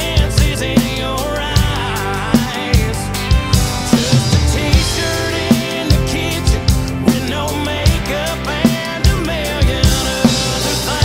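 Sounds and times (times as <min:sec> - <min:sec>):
country song guitars: 0:00.0 - 0:11.0
drum kit kick and snare: 0:00.0 - 0:11.0.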